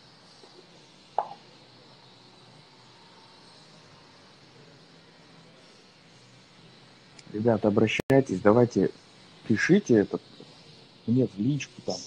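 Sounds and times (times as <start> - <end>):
room hiss: 0.0 - 12.0
sharp pop: 1.2 - 1.4.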